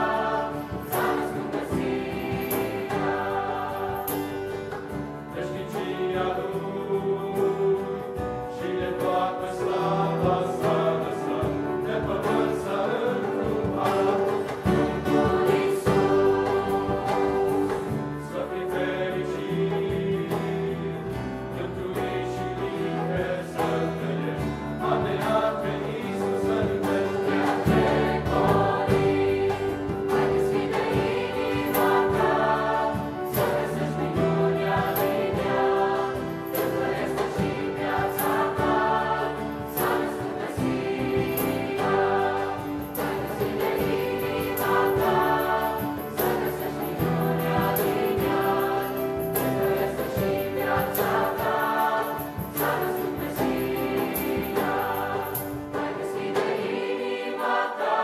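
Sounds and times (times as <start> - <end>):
choir singing a carol: 0.0 - 58.0.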